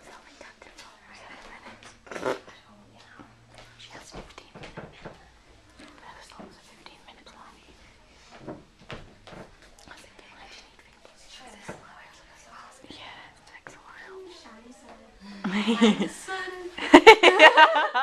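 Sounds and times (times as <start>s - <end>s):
whispering and hushed talk: 0.0s - 8.5s, 9.6s - 16.8s.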